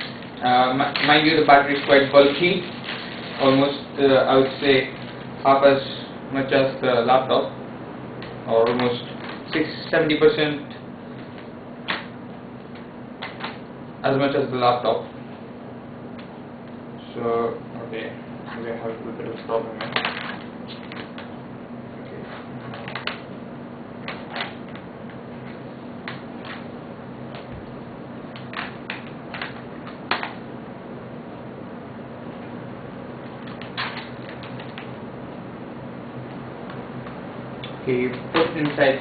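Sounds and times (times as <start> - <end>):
low electrical hum: 0.0 - 39.0.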